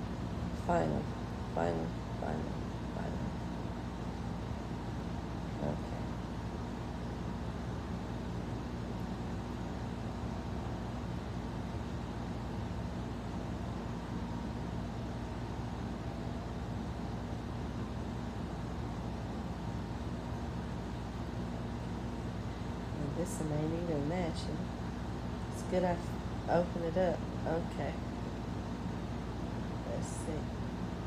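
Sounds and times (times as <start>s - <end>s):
fan humming: 0.0s - 31.0s.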